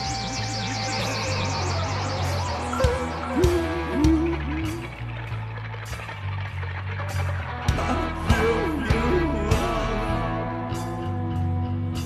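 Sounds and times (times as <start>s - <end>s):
sustained low bass notes: 0.0s - 12.0s.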